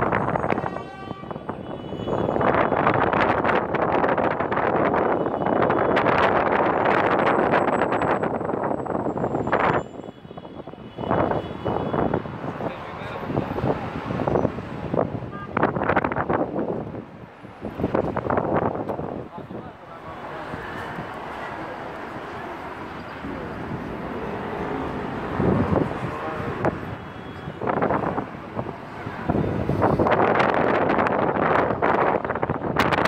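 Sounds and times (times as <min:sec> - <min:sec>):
traffic: 0:00.0 - 0:33.0
wind: 0:00.0 - 0:33.0.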